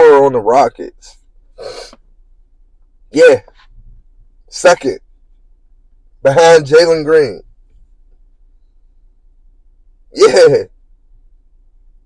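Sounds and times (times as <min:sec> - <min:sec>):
man talking: 0:00.0 - 0:01.1, 0:03.1 - 0:03.5, 0:04.5 - 0:05.0, 0:06.2 - 0:07.4, 0:10.1 - 0:10.7
faint low hum: 0:00.0 - 0:12.0
man breathing in: 0:01.6 - 0:02.0.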